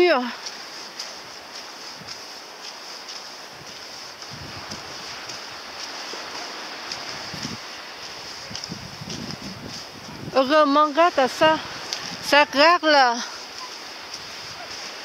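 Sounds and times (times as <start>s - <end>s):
footsteps crunching on dirt path: 0.0s - 15.0s
wind gusts buffeting microphone: 0.0s - 15.0s
wind hiss: 0.0s - 15.0s.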